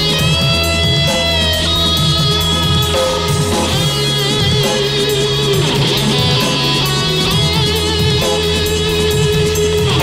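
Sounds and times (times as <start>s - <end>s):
drum and cymbal hits: 0.0s - 10.0s
electric guitars: 0.0s - 10.0s
sustained bass notes: 0.0s - 10.0s.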